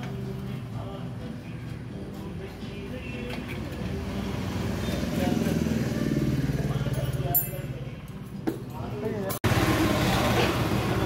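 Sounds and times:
engine running: 0:09.4 - 0:11.0.

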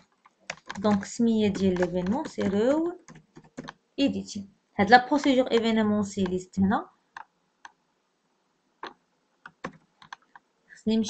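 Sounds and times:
computer keyboard keystrokes: 0:00.5 - 0:03.8, 0:09.4 - 0:10.4.

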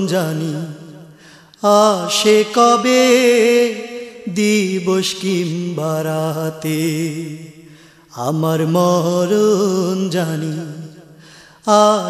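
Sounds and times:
man chanting wordless melody: 0:00.0 - 0:11.1, 0:11.7 - 0:12.0.

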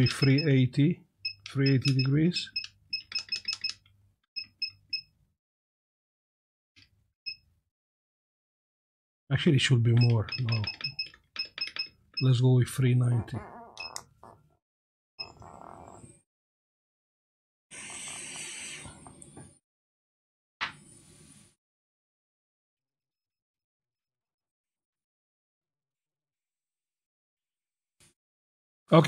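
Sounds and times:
hot air station hissing: 0:17.7 - 0:19.0.

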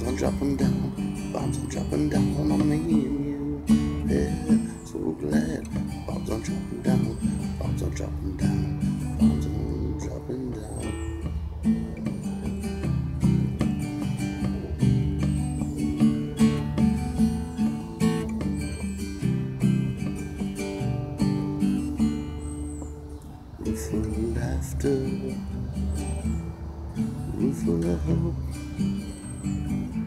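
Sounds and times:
acoustic guitar strumming: 0:00.0 - 0:30.0.

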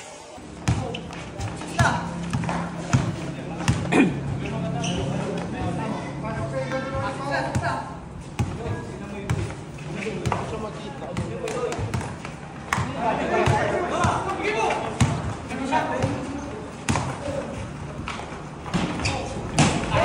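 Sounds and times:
basketball bouncing on concrete: 0:00.6 - 0:03.9, 0:08.4 - 0:09.6, 0:10.2 - 0:17.4.

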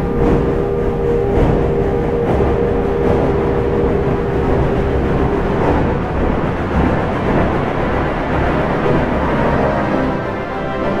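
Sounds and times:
dense low rumble: 0:00.0 - 0:10.6.

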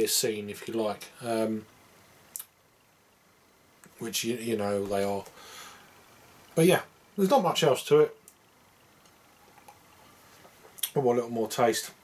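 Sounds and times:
faint soft clicks: 0:00.6 - 0:02.6, 0:03.8 - 0:04.0, 0:08.2 - 0:11.0.

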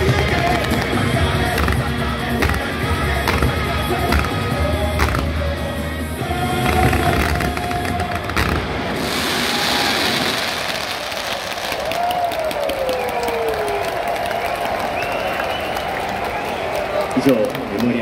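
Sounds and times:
show music with heavy beat: 0:00.0 - 0:08.6
fireworks popping: 0:00.0 - 0:12.6
crowd cheering and applauding: 0:00.0 - 0:18.0.

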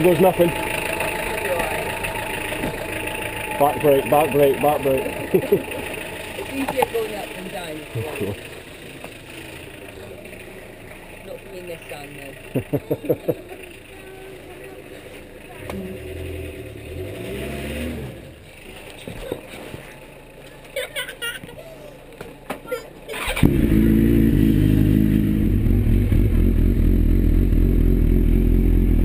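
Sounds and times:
motorcycle engine starting and idling: 0:00.0 - 0:20.8, 0:22.0 - 0:29.0.

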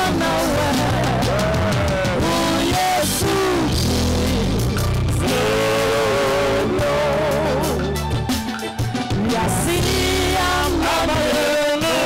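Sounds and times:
amplified instrumental accompaniment: 0:00.0 - 0:12.0
woman singing through a microphone: 0:09.2 - 0:12.0.

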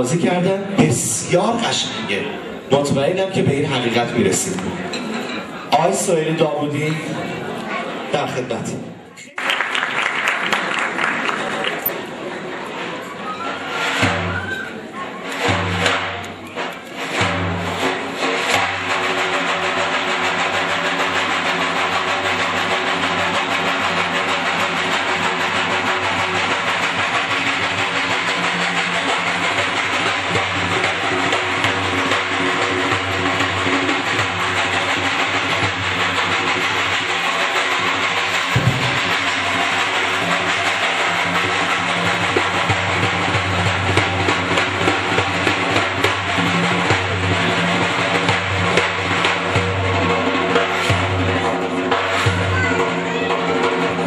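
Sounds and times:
frame drum roll with jingling ringlets: 0:12.7 - 0:54.0
heavy bass drum stroke: 0:17.0 - 0:54.0.

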